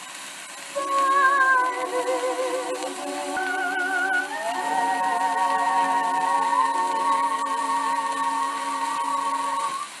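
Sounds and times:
record surface hiss: 0.0s - 10.0s
held chord from old record: 0.6s - 10.0s.

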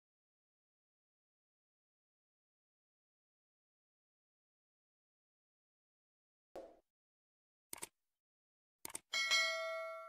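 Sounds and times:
mouse clicks: 7.7s - 7.9s, 8.8s - 9.1s
notification bell chime: 9.2s - 10.0s.

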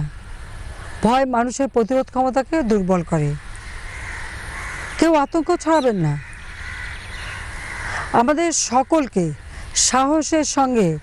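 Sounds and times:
woman speaking: 1.0s - 3.4s, 5.0s - 6.2s, 8.0s - 11.0s
crows cawing: 3.5s - 9.6s.

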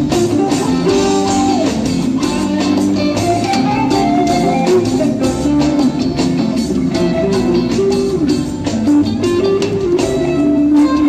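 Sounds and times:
electric guitar melody: 0.0s - 11.0s
live band music: 0.0s - 11.0s.

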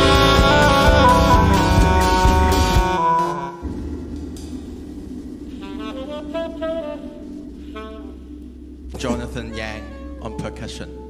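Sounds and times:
jazz band playing loudly: 0.0s - 3.6s, 5.6s - 8.2s
saxophone short notes: 0.0s - 3.7s
low steady drone: 0.0s - 11.0s.

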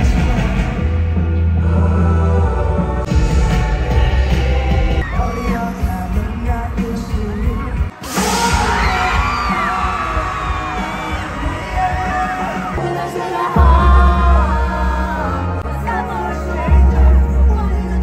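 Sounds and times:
crowd cheering and singing along: 0.0s - 18.0s
live pop music with heavy bass: 0.0s - 18.0s.

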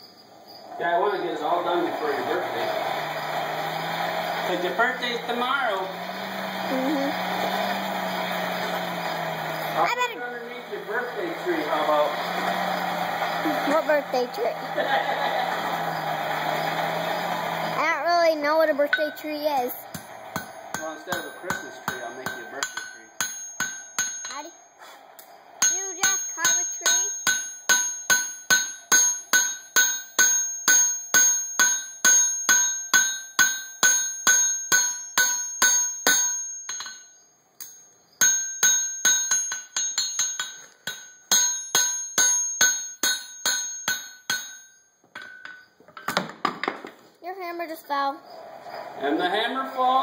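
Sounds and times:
hammer striking steel on anvil: 18.9s - 24.6s, 25.6s - 46.1s.

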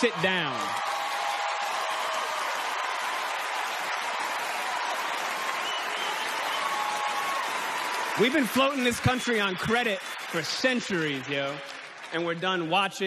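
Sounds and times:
audience applauding and cheering: 0.0s - 13.0s.

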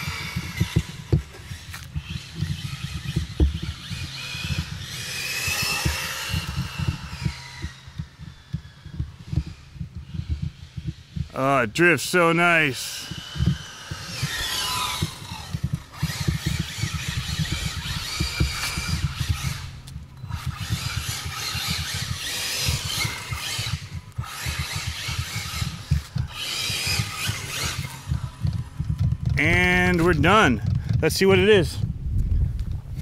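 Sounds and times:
rc car motor whining: 0.0s - 31.5s.

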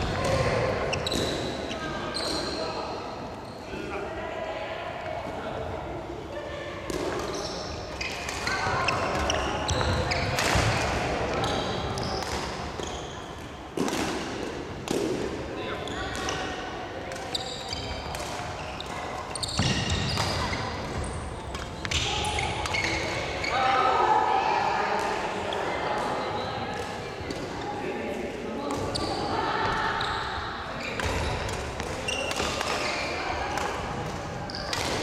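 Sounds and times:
shoe squeaks: 0.9s - 2.8s, 7.3s - 10.4s, 11.4s - 12.2s, 18.6s - 23.6s, 32.0s - 33.2s.

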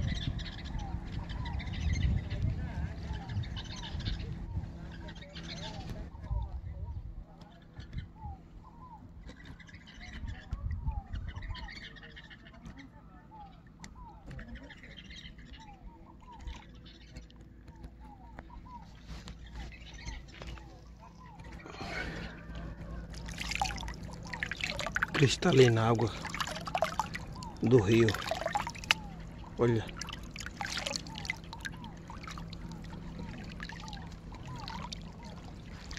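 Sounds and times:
birds chirping: 0.0s - 35.9s
low rumbles: 19.4s - 35.9s.

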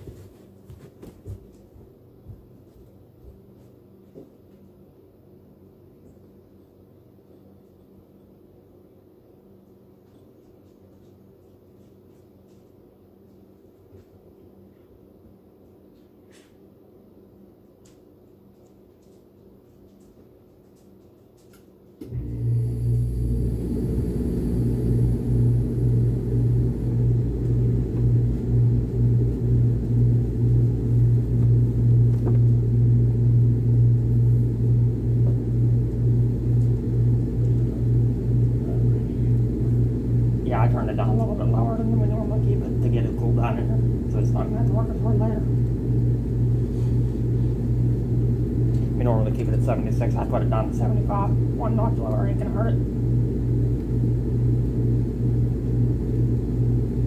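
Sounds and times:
air conditioner humming: 0.0s - 57.0s.

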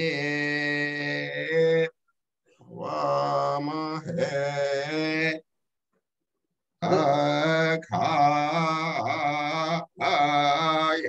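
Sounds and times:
man chanting: 0.0s - 1.9s, 2.7s - 5.4s, 6.8s - 11.0s.

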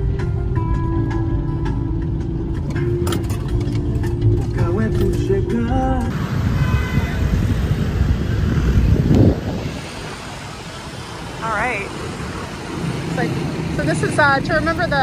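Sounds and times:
street ambience: 0.0s - 15.0s
traffic rumble: 0.0s - 15.0s.

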